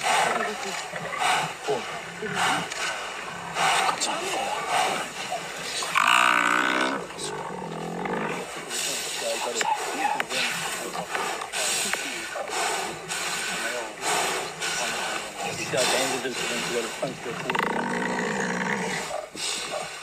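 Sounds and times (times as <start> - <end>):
lions growling: 0.0 - 20.0.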